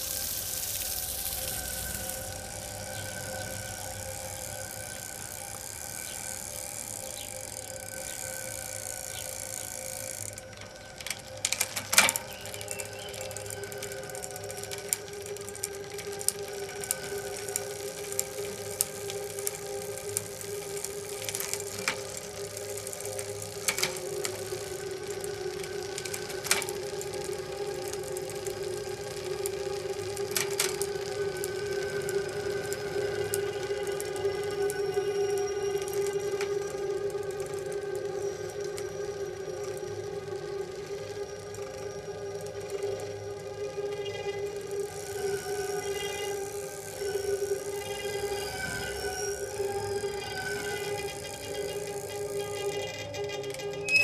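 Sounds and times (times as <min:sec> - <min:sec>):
faint sustained tones: 0:00.0 - 0:54.0
sharp clicks and crackles: 0:00.0 - 0:54.0
steady held drone: 0:00.0 - 0:54.0.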